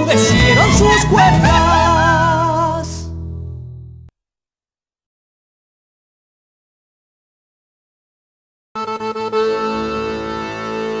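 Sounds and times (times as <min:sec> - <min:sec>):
accordion folk music: 0:08.8 - 0:11.0.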